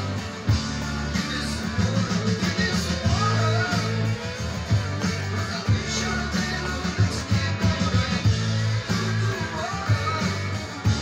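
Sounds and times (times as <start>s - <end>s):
electric guitar strummed chords: 0.0s - 11.0s.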